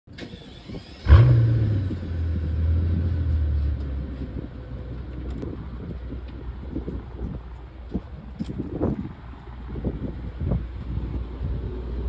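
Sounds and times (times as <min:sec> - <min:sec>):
car engine starting and idling: 0:00.1 - 0:06.7.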